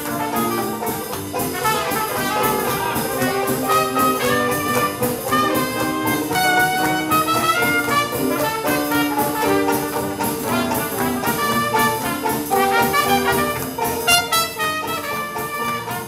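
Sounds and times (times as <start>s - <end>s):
jazz band playing: 0.0s - 16.0s
trumpet lead: 0.0s - 16.0s.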